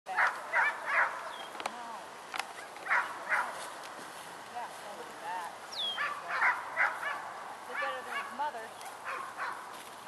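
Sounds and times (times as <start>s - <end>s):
small birds chirping: 0.8s - 1.9s, 5.4s - 7.1s, 7.7s - 9.6s.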